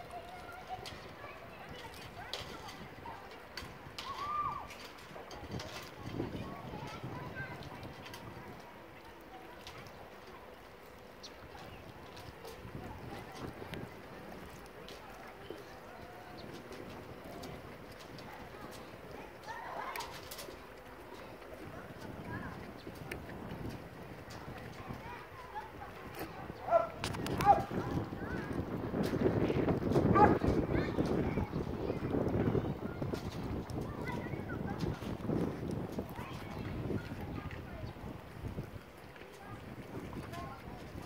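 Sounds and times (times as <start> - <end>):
footsteps on wooden boardwalk: 0.0 - 41.0.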